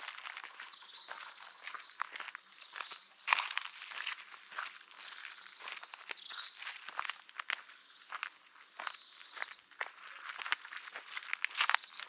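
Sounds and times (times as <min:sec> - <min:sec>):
footsteps on dirt trail with leaves: 0:00.0 - 0:12.0.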